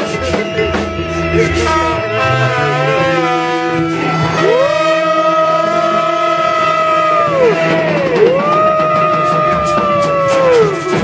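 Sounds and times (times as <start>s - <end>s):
man singing into a microphone: 0.0s - 6.7s
steady low drone: 0.0s - 8.8s.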